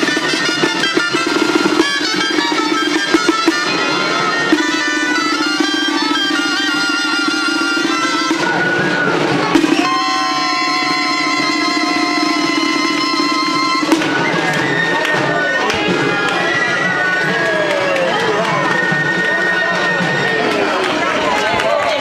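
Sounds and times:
held high tone: 0.0s - 21.1s
crowd talking: 0.0s - 22.0s.

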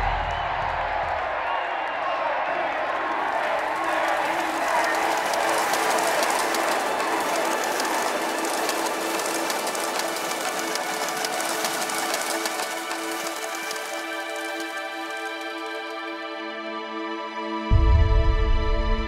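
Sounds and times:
crowd applauding and cheering: 0.0s - 16.6s.

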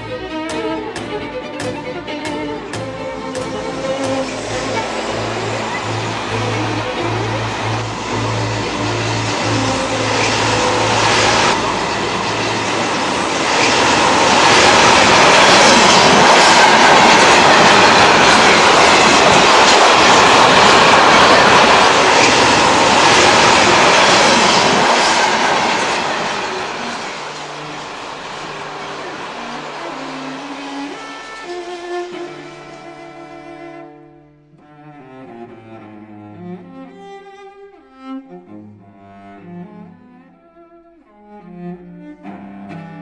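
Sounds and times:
train passing with wheel clatter: 0.0s - 33.9s.

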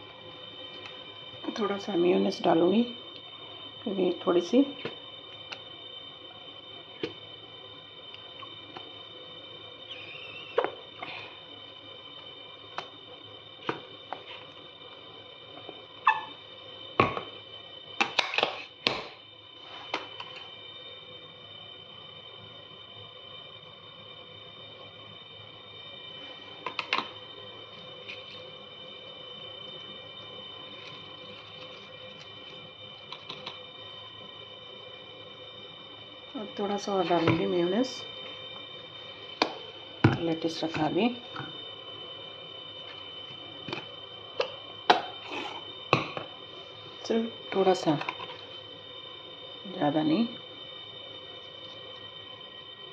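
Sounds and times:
steady high-pitched whine: 0.0s - 52.9s.

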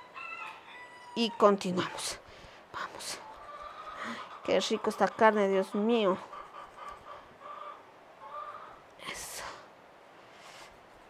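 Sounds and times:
chickens clucking: 3.1s - 8.9s.

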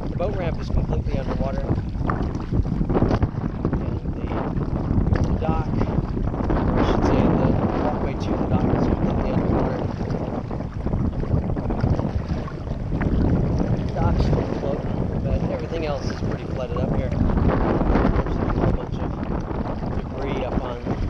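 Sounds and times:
kayak paddle splashing: 0.0s - 21.0s
wind buffeting microphone: 0.0s - 21.0s.

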